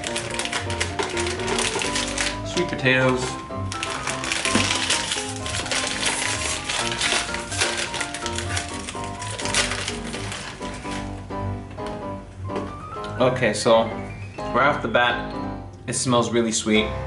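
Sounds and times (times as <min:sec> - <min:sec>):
foil snack bag crinkling: 0:00.0 - 0:11.2
background music with bass: 0:00.0 - 0:17.0.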